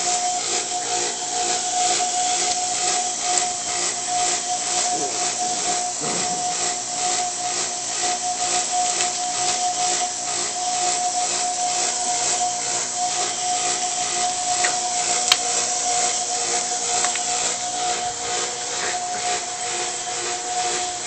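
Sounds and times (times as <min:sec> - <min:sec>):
pulsing mid-pitched tone: 0:00.0 - 0:21.0.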